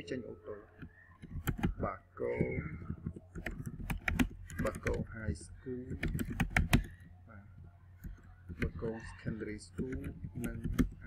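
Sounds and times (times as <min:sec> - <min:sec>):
typing on computer keyboard: 0:00.8 - 0:07.1, 0:08.0 - 0:08.9, 0:09.6 - 0:11.0.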